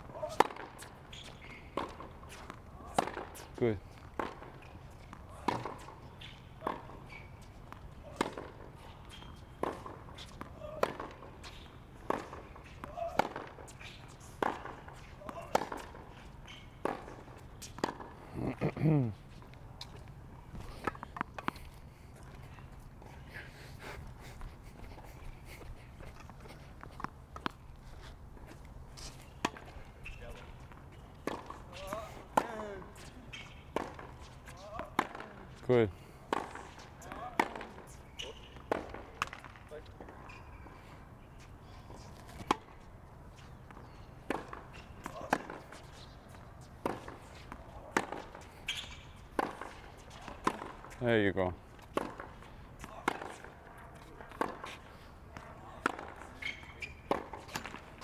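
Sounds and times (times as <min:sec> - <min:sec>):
tennis balls struck by rackets: 0:00.0 - 0:18.2, 0:19.8 - 0:22.4, 0:28.4 - 0:40.6, 0:41.4 - 0:58.0
tennis balls bouncing on court: 0:00.0 - 0:18.7, 0:19.4 - 0:22.5, 0:26.0 - 0:27.7, 0:28.4 - 0:40.7, 0:41.4 - 0:58.0.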